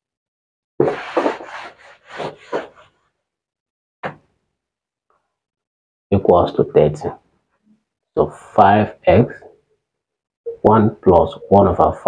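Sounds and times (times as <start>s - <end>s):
eraser rubbing on whiteboard: 0.8s - 3.0s.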